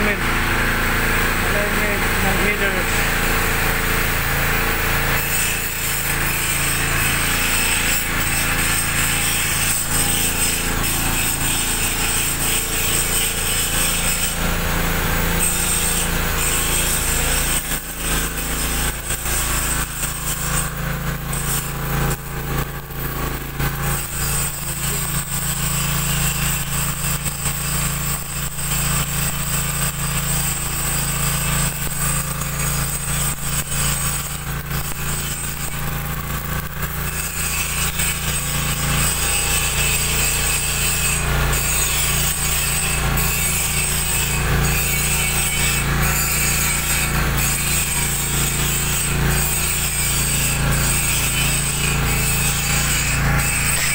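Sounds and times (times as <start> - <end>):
electric arc welding: 0.0 - 53.9.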